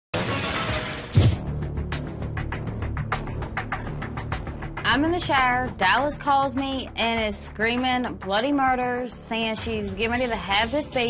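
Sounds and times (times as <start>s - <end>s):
music with steady beat: 1.4s - 6.0s.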